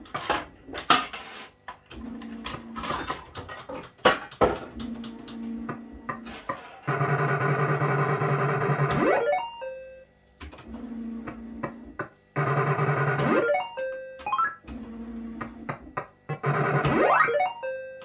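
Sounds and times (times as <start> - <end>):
slot machine reels clicking: 12.4 - 14.6
electronic beeps: 12.7 - 14.6, 16.7 - 18.0.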